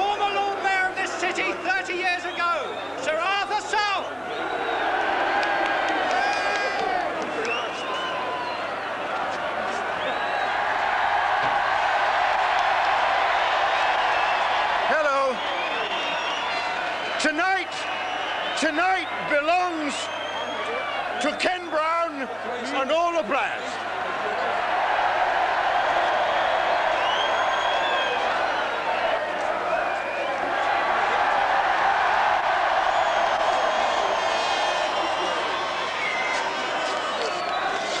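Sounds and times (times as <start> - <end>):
large crowd cheering: 0.0 - 38.0.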